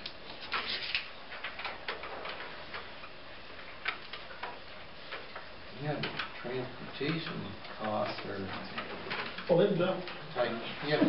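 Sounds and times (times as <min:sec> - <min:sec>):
paper sheets rustling: 0:00.0 - 0:02.8
room hiss: 0:00.0 - 0:11.0.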